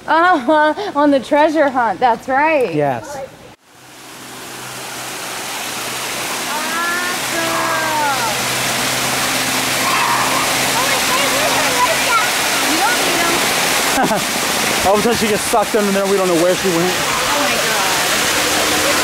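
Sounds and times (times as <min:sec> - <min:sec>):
fountain water splashing into pool: 0:03.7 - 0:19.0.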